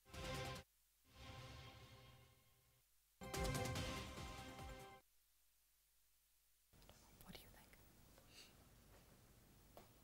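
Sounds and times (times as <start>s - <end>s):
soft indistinct whispering: 6.8s - 8.6s.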